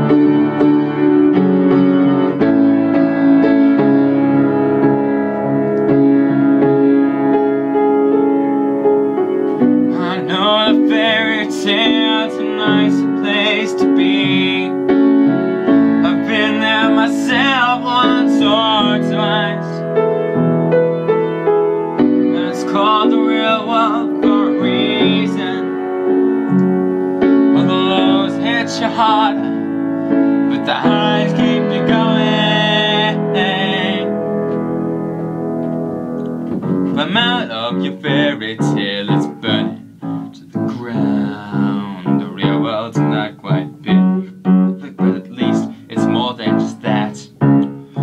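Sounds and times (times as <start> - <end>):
piano playing chords: 0.0 - 48.0
person singing wavering notes: 37.0 - 46.0.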